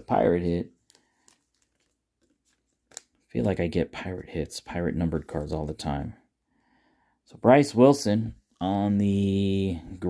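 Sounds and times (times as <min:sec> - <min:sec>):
trading cards clicking: 0:00.8 - 0:03.3.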